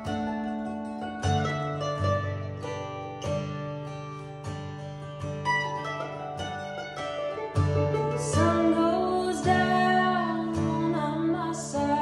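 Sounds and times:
acoustic guitar strumming: 0.0s - 12.0s
mandolin picking: 0.0s - 12.0s.

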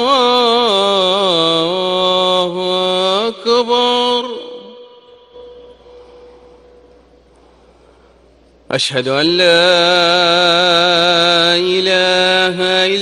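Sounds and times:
call to prayer over loudspeakers: 0.0s - 13.0s
faint hum: 0.0s - 13.0s.

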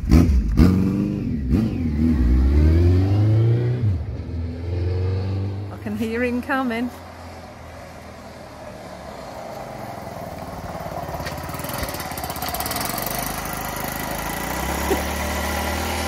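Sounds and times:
motorcycle engine running: 9.7s - 16.0s.

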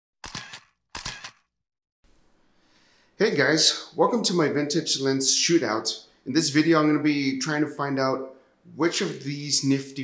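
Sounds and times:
camera shutter clicks: 0.2s - 1.5s.

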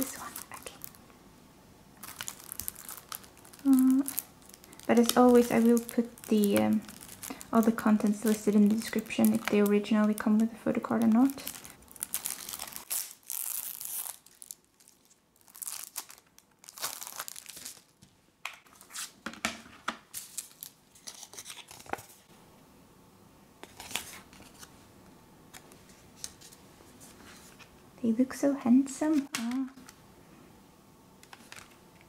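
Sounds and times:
plastic wrap crinkling: 0.0s - 1.0s, 2.0s - 19.2s, 20.0s - 22.3s.

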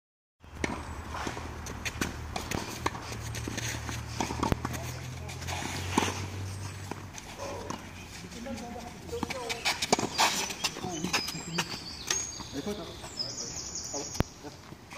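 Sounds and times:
rackets striking tennis ball: 0.5s - 13.2s.

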